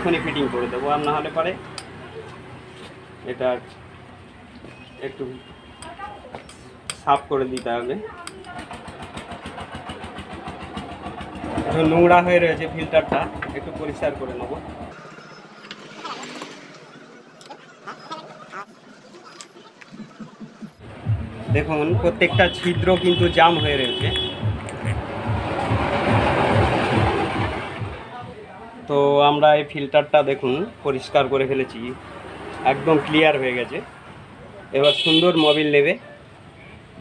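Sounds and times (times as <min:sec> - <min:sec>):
engine knocking: 0:08.5 - 0:14.9
person calling out: 0:24.6 - 0:25.1.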